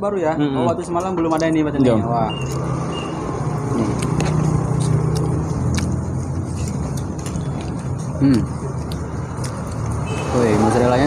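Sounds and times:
engine humming: 1.9 - 11.0
person murmuring: 8.2 - 8.6.

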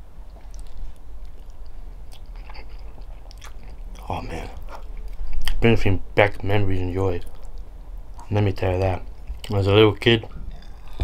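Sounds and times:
person chewing food: 0.2 - 5.6, 7.2 - 8.3, 10.4 - 11.0.

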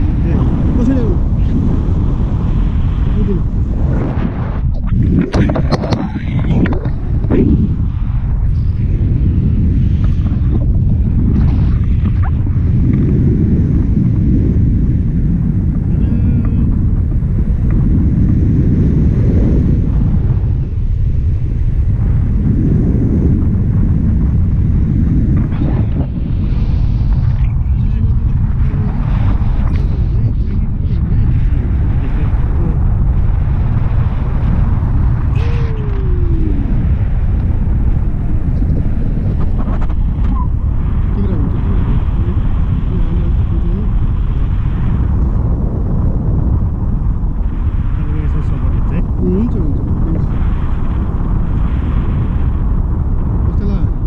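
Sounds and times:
wind noise on microphone: 0.0 - 54.0.

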